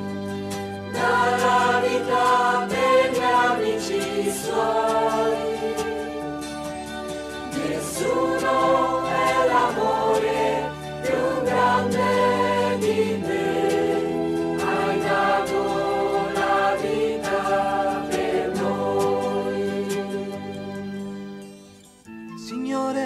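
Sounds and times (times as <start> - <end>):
choir singing hymn: 0.9 - 6.7, 7.3 - 20.7.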